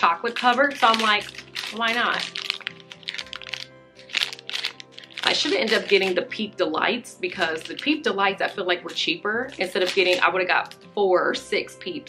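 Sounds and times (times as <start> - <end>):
plastic wrappers crinkling: 0.0 - 6.6, 7.3 - 10.8
quiet background music: 0.0 - 12.0.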